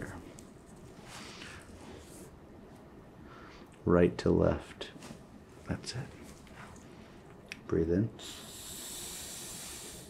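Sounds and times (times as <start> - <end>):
man breathing in deeply: 8.2 - 10.0.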